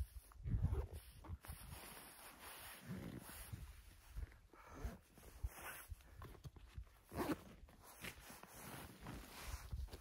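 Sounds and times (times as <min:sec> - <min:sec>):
jacket and backpack rustling: 0:00.0 - 0:10.0.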